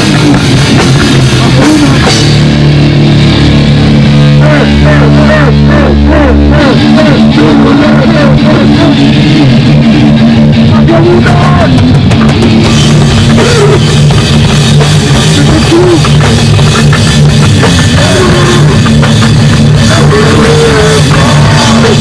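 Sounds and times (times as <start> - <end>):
drums: 0.0 - 22.0
electric guitar: 0.0 - 22.0
hardcore band playing loud: 0.0 - 22.0.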